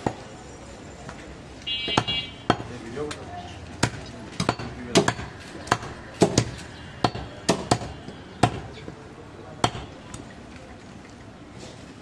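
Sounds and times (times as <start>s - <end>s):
cleaver chopping meat and bone: 1.9s - 9.0s, 9.6s - 10.2s.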